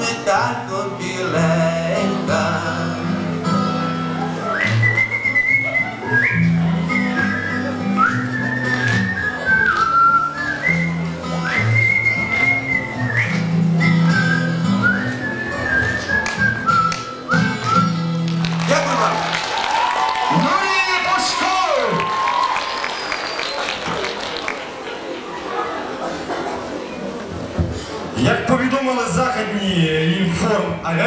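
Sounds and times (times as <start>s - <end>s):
acoustic guitar: 0.0s - 19.4s
man whistling a melody: 4.4s - 18.3s
applause: 17.6s - 25.0s.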